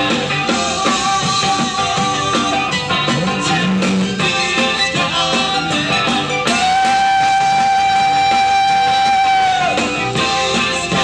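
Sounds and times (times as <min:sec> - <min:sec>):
rock band holding a high note: 0:00.0 - 0:11.0.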